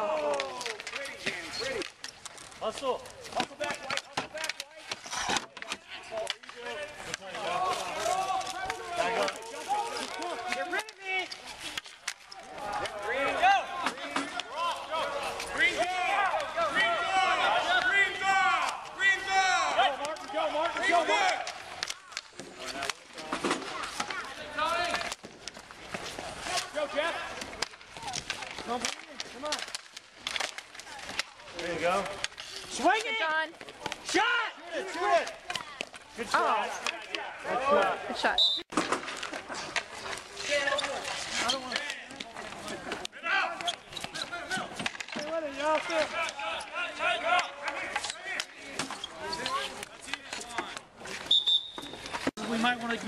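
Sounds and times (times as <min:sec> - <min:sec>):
hockey sticks clacking: 0:00.0 - 0:53.0
players talking and calling out: 0:00.0 - 0:53.0.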